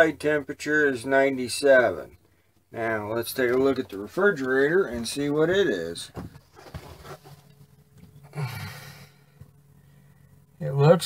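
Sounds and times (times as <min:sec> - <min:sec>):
man sighing: 0:08.2 - 0:09.4.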